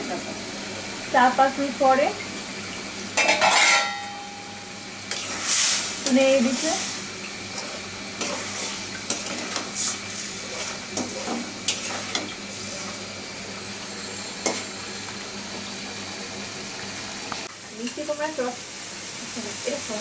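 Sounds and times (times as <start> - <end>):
curry sizzling: 0.0 - 20.0
metal spatula scraping pan: 3.2 - 4.2, 5.1 - 6.8, 7.5 - 13.0.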